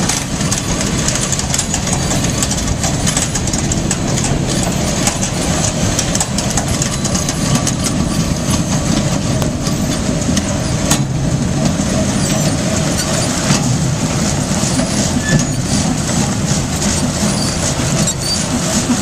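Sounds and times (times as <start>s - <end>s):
grinder machine running: 0.0s - 19.0s.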